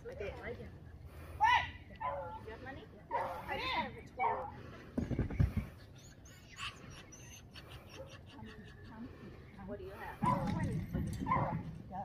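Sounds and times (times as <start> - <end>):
dog yipping: 5.8 - 8.5.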